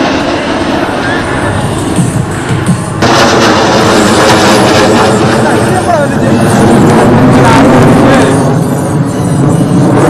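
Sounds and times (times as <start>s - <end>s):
jet aircraft roar: 0.0s - 10.0s.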